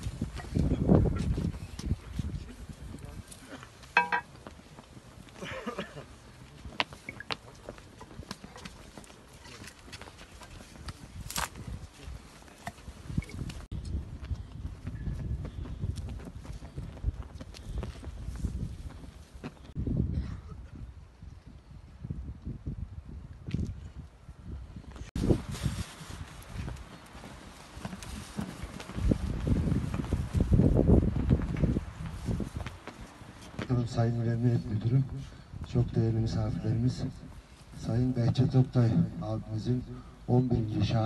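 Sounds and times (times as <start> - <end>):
footsteps on hard ground: 3.8 - 5.5, 25.0 - 33.7.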